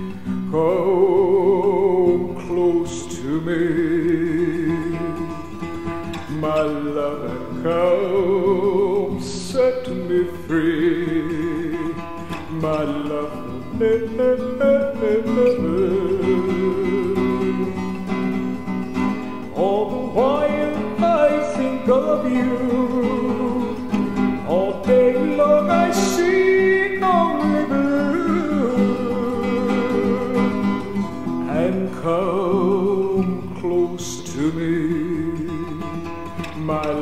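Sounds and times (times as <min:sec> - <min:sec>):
fingerpicked acoustic guitar: 0:00.0 - 0:37.0.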